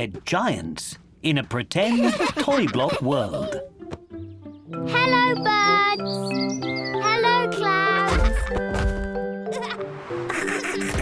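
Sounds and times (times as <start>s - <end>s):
cartoon background music: 1.8s - 11.0s.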